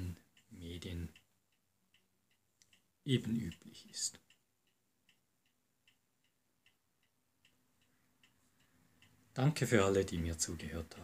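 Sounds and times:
faint ticking: 0:00.0 - 0:11.0.

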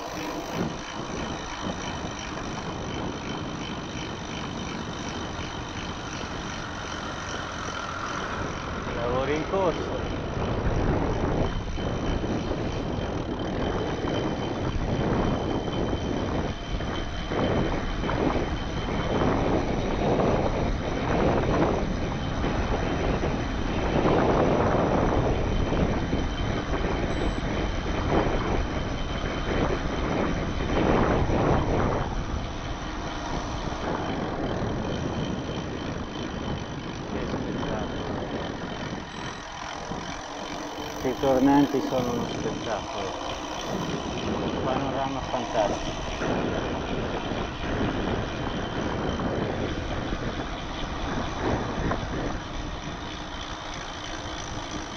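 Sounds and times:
wind rushing over microphone: 0:00.0 - 0:54.9.

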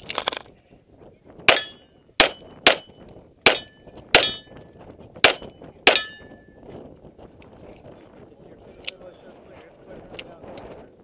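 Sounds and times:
steel targets ringing: 0:01.5 - 0:02.0, 0:03.5 - 0:04.6, 0:05.9 - 0:06.4
pistol shots: 0:01.5 - 0:04.5, 0:05.2 - 0:06.3.

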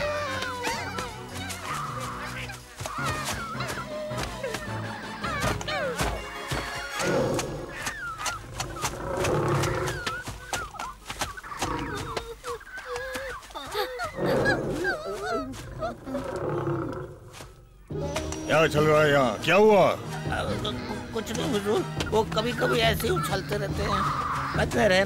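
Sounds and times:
background music: 0:00.0 - 0:10.3, 0:13.4 - 0:25.0.

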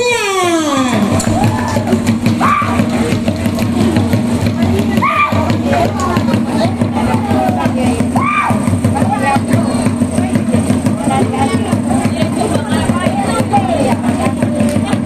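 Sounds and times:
loud shout: 0:00.0 - 0:02.9, 0:04.9 - 0:05.6, 0:07.0 - 0:09.2
fast drum rhythm: 0:00.9 - 0:15.0.

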